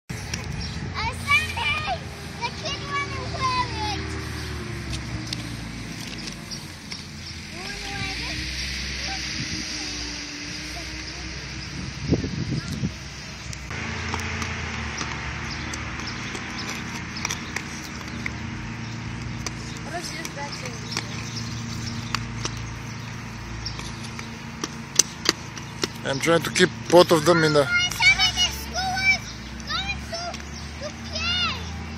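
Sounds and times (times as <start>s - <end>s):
skate wheels rolling on asphalt: 0.1s - 31.9s
steady rushing noise: 0.1s - 31.9s
faint children's voices: 7.4s - 13.1s.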